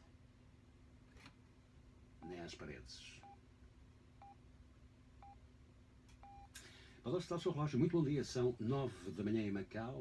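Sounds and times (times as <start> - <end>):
faint radio time signal beeps: 6.2 - 6.5.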